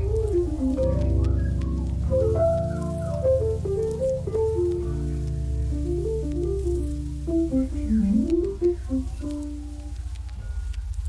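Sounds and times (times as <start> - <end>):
melody of short notes: 0.0 - 9.5
low sustained bass: 0.0 - 9.7.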